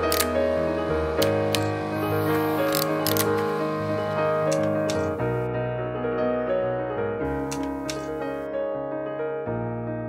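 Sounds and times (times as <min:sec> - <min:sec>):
camera clicks: 0:00.0 - 0:00.4, 0:02.6 - 0:03.5, 0:07.5 - 0:08.2
background keyboard music: 0:00.0 - 0:10.0.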